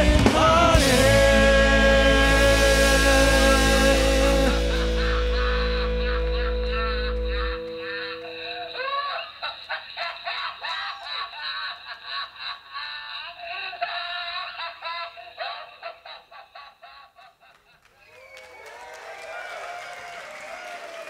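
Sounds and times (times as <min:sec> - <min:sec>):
electric violin playing: 0:00.0 - 0:09.1.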